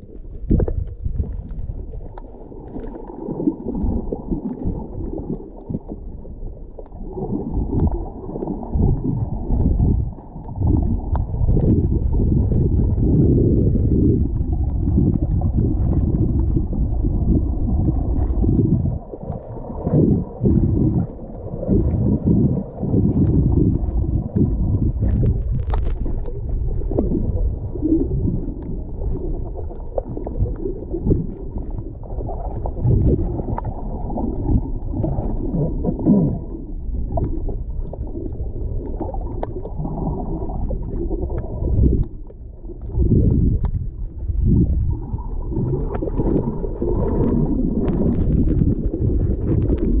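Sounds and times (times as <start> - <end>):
small clicks and crackles: 0.0 - 13.0, 22.7 - 50.0
underwater churning rumble: 0.0 - 50.0.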